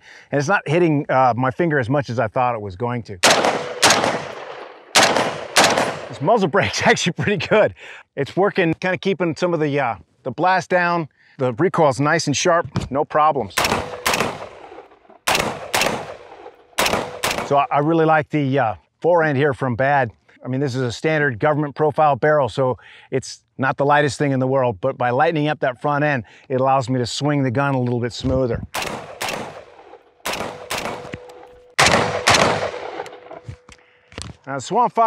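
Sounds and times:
rifle shots with echo: 3.2s - 6.4s, 13.6s - 17.8s, 28.8s - 33.5s.

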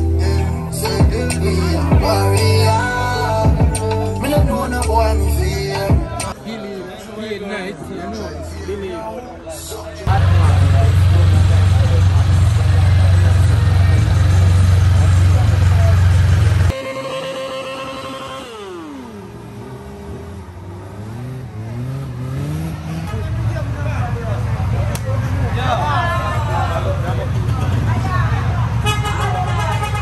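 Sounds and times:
car engine revving hard: 18.2s - 23.2s.

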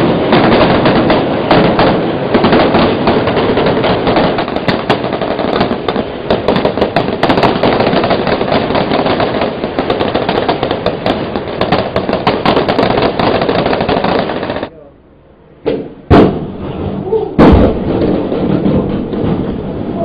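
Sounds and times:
rapid gunfire: 0.0s - 14.7s.

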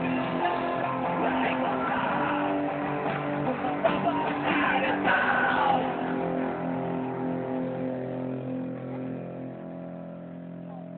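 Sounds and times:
electric guitar chord ringing: 0.0s - 10.9s.

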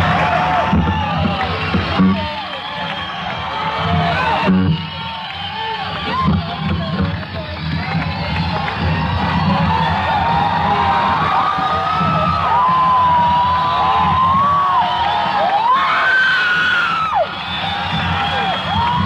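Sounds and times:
high screams and whoops: 0.0s - 6.9s, 7.6s - 19.0s
concert audience cheering: 0.0s - 19.0s
long high scream: 10.1s - 19.0s.

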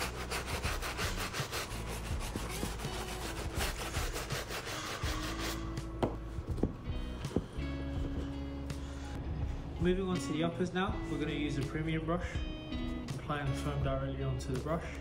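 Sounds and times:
brush scrubbing shoe sole: 0.0s - 5.7s
towel rubbing shoe sole: 0.0s - 6.2s.

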